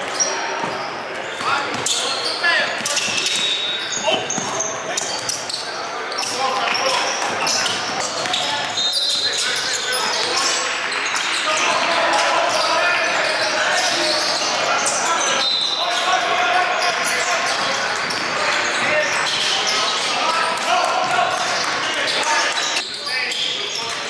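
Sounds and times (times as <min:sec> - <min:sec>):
sneakers squeaking: 0:00.0 - 0:24.0
voices calling out: 0:00.0 - 0:24.0.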